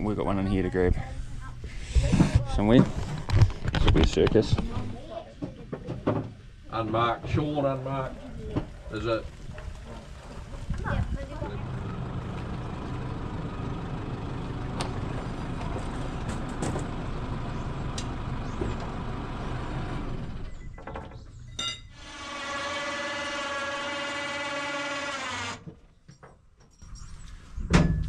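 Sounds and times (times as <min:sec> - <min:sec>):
low mechanical rumble: 0:08.1 - 0:25.3
electric winch motor whining: 0:11.5 - 0:20.8, 0:21.9 - 0:25.7.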